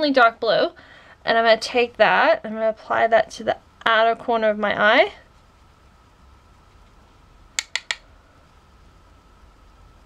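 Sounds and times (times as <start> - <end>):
makeup compact clicks: 7.6 - 8.0.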